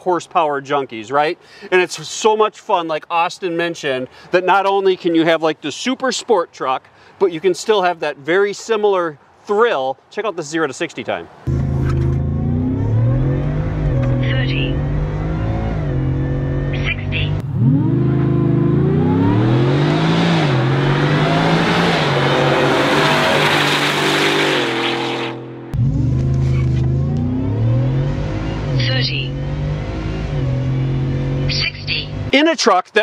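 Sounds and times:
truck accelerating past: 11.5 - 32.3
truck engine accelerating: 11.5 - 32.3.

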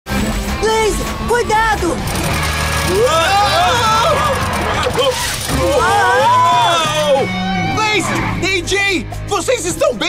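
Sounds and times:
cartoon voices crying out: 2.9 - 8.2.

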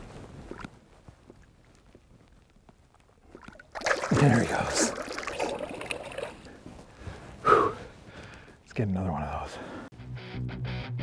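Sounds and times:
water trickling and dripping: 1.3 - 6.6
water splashing against boat: 3.2 - 6.5.

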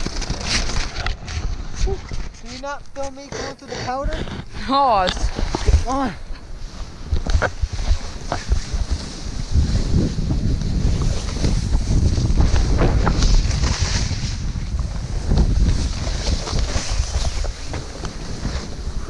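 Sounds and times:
wind rumbling on microphone: 0.0 - 19.0
snowboards sliding through snow: 4.7 - 19.0.

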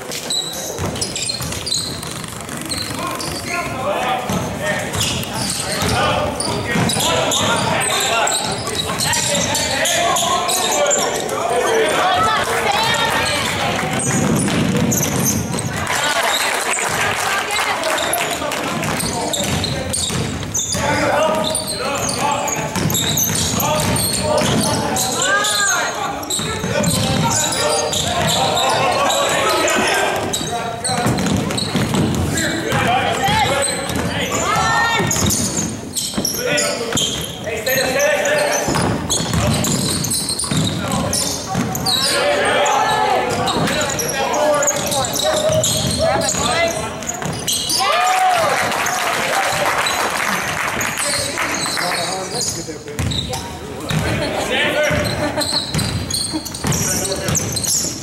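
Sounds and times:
voices in a large hall: 0.0 - 58.0
basketball bouncing on wooden floor: 0.7 - 3.5, 4.2 - 7.7, 13.8 - 15.8, 18.7 - 25.0, 29.7 - 37.2, 38.7 - 41.9, 44.7 - 47.6, 53.0 - 54.2, 54.9 - 57.8.

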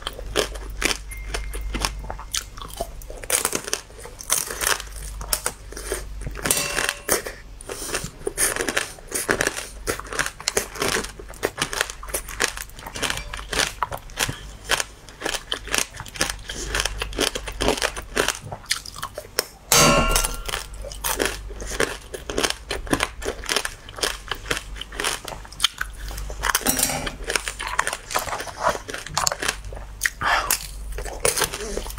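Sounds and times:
crunching and chewing candy shell: 0.0 - 6.5, 7.2 - 19.6, 20.5 - 31.9.

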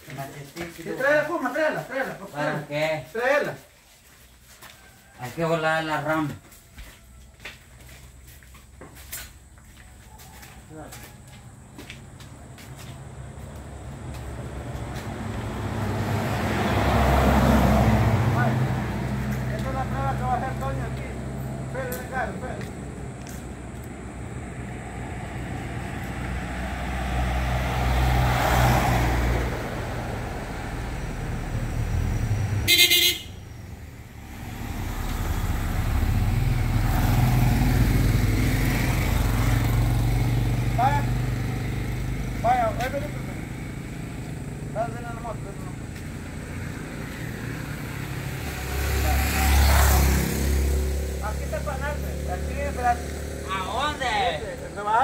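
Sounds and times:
vehicles passing: 0.0 - 55.0
vehicle horn toot: 32.6 - 33.4.

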